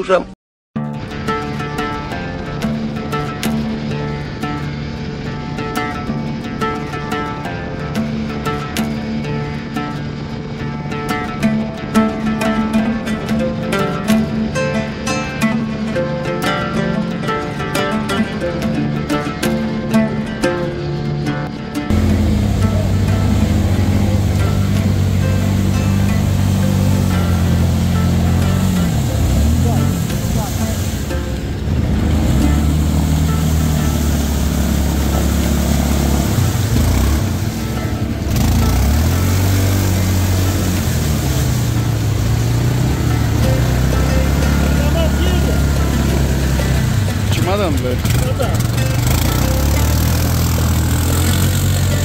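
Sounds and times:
quad churning through mud: 1.0 - 52.0
atv engine revving: 21.9 - 52.0.

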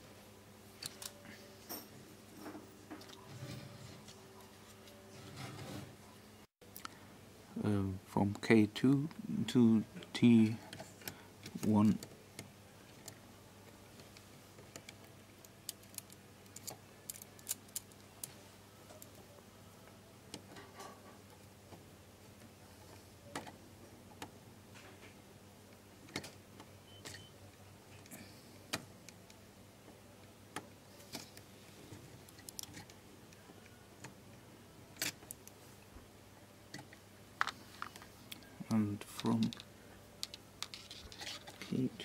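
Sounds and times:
faint steady hum: 0.0 - 42.0
hands handling wires: 31.0 - 33.0, 36.7 - 38.5, 39.1 - 41.9.

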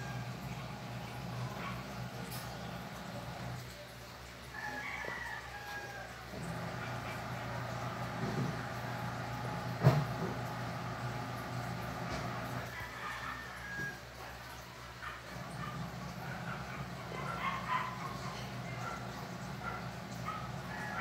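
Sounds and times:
distant rooster crowing: 0.0 - 3.6, 4.5 - 14.4, 15.5 - 21.0
aquarium equipment humming: 0.0 - 21.0.

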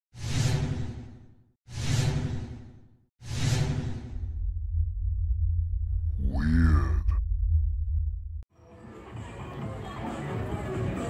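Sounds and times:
whooshes: 0.1 - 5.0
deep steady rumble: 4.0 - 8.5.

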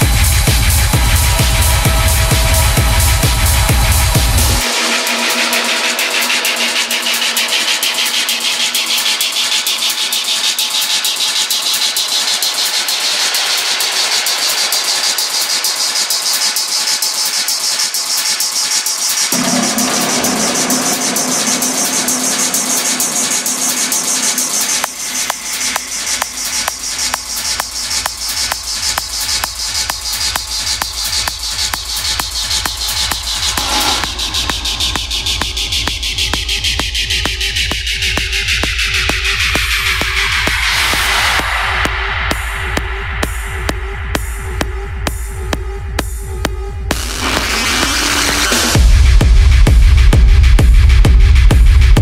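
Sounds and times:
deep synth layer: 0.0 - 10.2, 19.3 - 27.1, 33.3 - 37.5
pulsing bass beat: 0.0 - 15.6, 19.3 - 52.0
dark techno mix: 0.0 - 52.0
fast steady hi-hats: 0.0 - 52.0.

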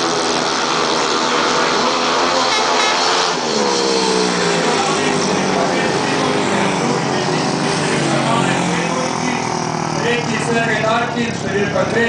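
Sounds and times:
motorcycle engines revving: 0.0 - 12.0.

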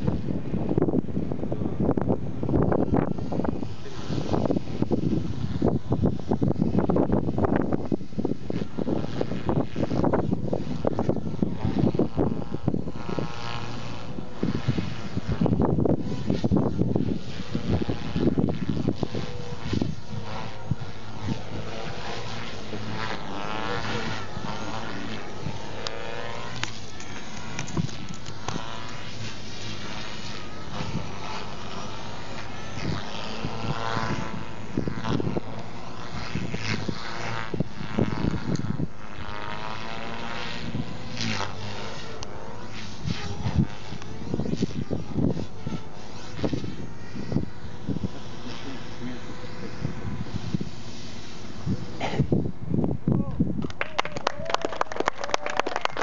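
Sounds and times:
model helicopter rotor and motor whine: 0.0 - 53.5
wind buffeting microphone: 0.0 - 56.0.

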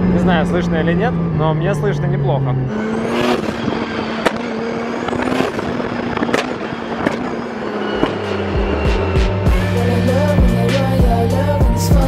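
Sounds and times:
turbocharged car engine running: 0.0 - 12.0
sharp exhaust pops: 4.2 - 7.3.

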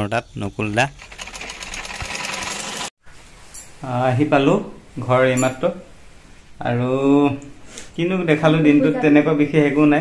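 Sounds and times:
sewing machine ticking: 0.8 - 2.9.

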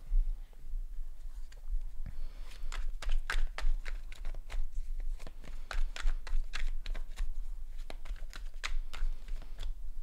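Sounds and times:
cards being shuffled: 2.4 - 9.8.

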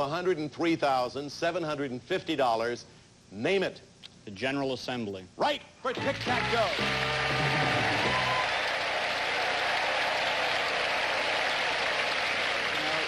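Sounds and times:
studio audience applauding: 6.0 - 13.0.

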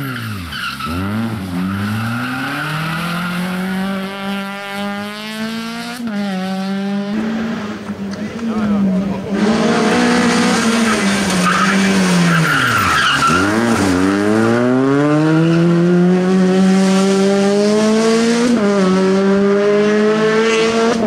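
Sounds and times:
rally car engine: 0.0 - 21.0
tyres squealing: 10.7 - 13.9.

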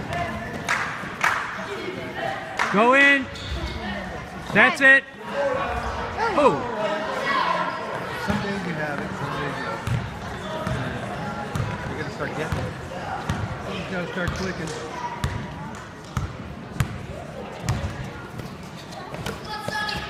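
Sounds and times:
murmur of voices: 0.0 - 20.0.

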